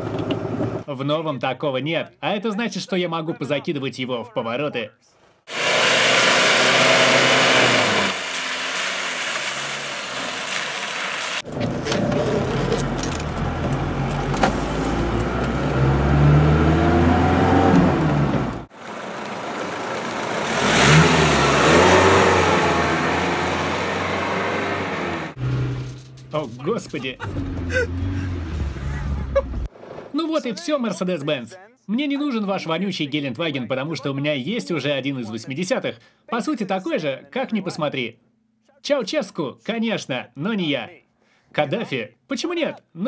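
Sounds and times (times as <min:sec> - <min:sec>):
wind and road noise: 0:05.5 - 0:26.4
diesel engine accelerating: 0:05.5 - 0:29.7.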